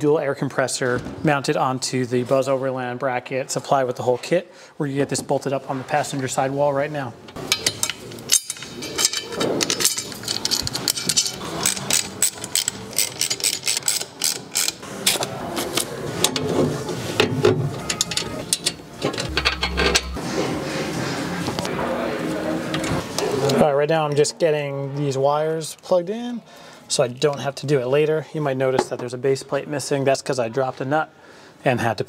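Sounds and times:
metal hardware clicking and clattering: 7.3 - 14.8, 17.8 - 20.2
low thud: 19.2 - 20.6.

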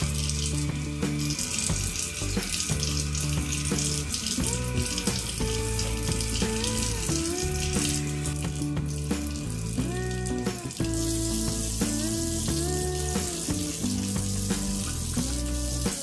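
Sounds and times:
background music with bass: 0.0 - 16.0
tap water running into sink: 0.0 - 16.0.

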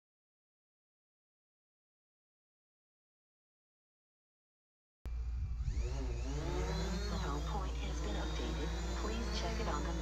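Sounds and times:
wind rumble on microphone: 5.1 - 7.9
drone propellers whining: 5.1 - 10.0.

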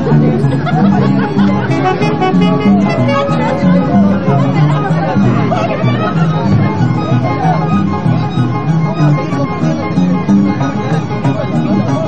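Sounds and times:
people talking: 0.0 - 12.0
dance band with saxophones harp violin: 1.2 - 12.0.

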